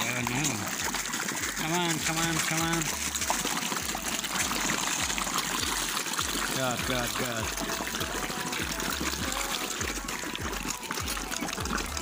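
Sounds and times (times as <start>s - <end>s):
fish splashing water: 0.0s - 12.0s.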